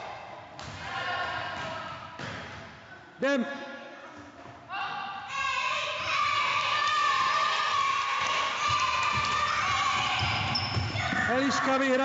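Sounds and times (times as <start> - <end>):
children yelling and shouting: 5.2 - 11.9.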